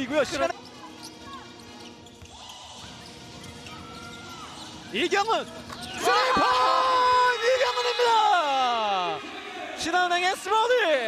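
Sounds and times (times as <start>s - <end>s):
sneakers squeaking on court: 0.5s - 6.0s.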